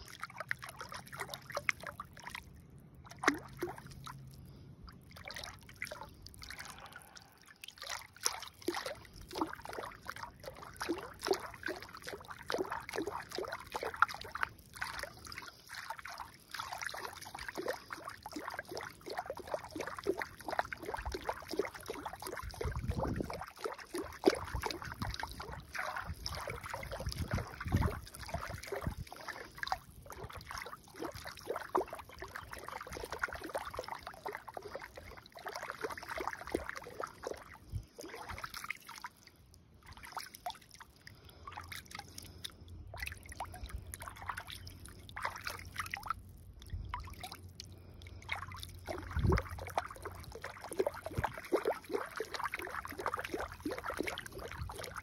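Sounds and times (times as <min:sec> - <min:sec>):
hand splashing in pond water: 0:00.0 - 0:55.0.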